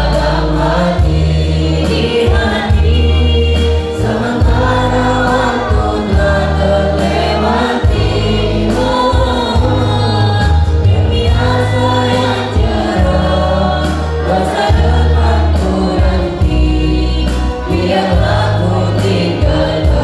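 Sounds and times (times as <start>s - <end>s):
amplified backing music: 0.0s - 20.0s
group of people singing: 0.0s - 20.0s.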